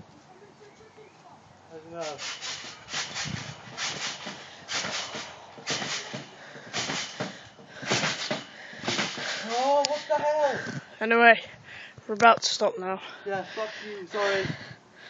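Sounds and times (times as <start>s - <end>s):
trampoline springs creaking: 1.8s - 11.4s.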